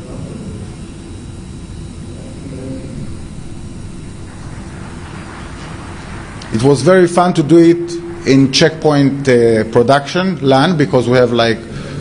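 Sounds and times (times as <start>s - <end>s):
low room noise rumble: 0.0s - 12.0s.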